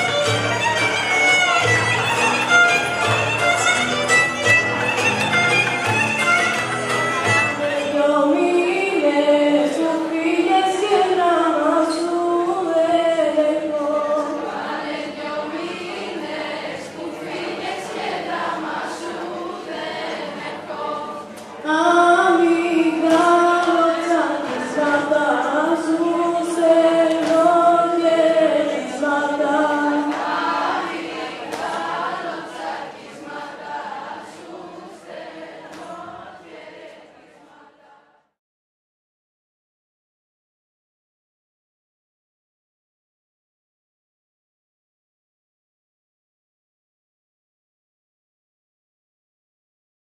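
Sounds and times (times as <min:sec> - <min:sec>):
group of voices singing: 0:07.5 - 0:38.4.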